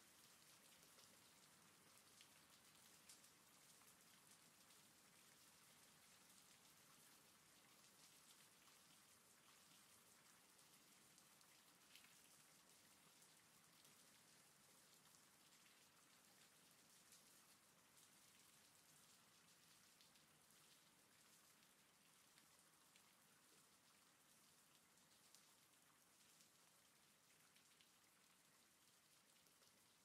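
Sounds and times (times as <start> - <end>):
faint steady rain: 0.0 - 30.0.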